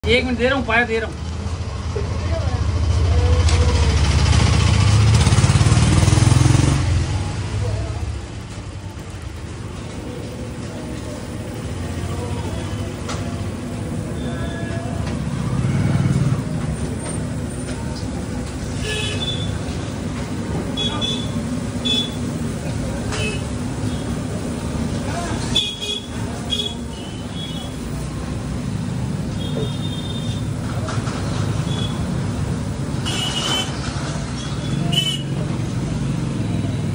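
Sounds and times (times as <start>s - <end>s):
voices: 0.0s - 4.4s, 6.4s - 36.9s
passing motor vehicle rumble: 0.0s - 36.9s
traffic background: 0.0s - 36.9s.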